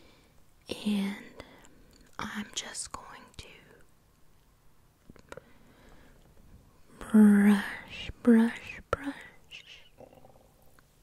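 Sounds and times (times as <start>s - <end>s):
person whispering: 0.7s - 3.9s, 6.9s - 10.5s.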